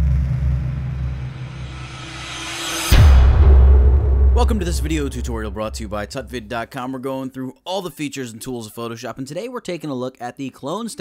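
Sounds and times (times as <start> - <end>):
hissing riser: 0.0 - 6.2
deep bass rumble: 0.0 - 6.6.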